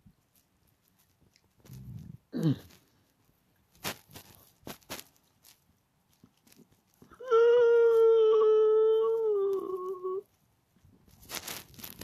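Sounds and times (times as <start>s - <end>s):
dog howling: 7.2s - 10.2s.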